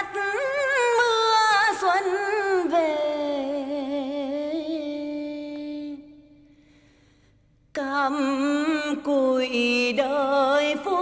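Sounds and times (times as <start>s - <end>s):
woman singing unaccompanied: 0.0s - 6.2s, 7.7s - 11.0s.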